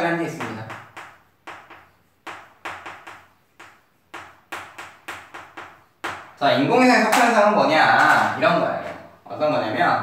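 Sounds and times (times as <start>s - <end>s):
chalk tapping and scraping on chalkboard: 0.0s - 7.4s.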